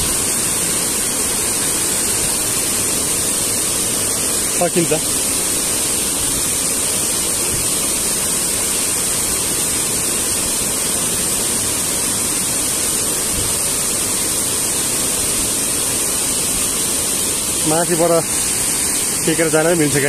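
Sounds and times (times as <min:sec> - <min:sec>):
water rushing over rocks: 0:00.0 - 0:20.0.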